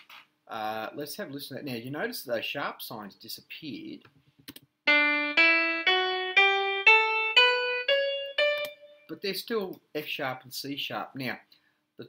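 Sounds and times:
piano playing a rising scale: 4.9s - 9.1s.

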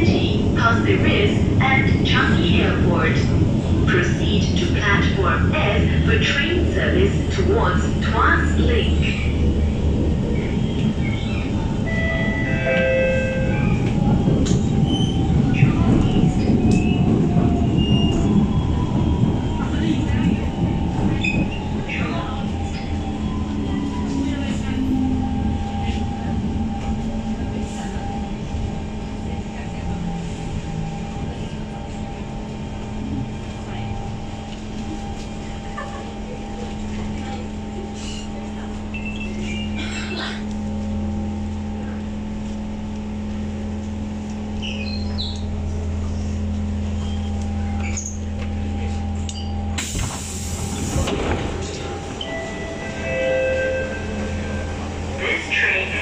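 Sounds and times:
wheel-on-rail rumble: 0.0s - 56.0s.

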